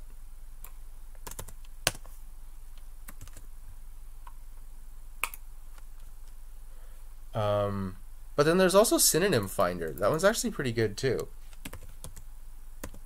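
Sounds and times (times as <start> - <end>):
faint steady hum: 0.0 - 13.0
keyboard and mouse clicks: 5.2 - 6.1.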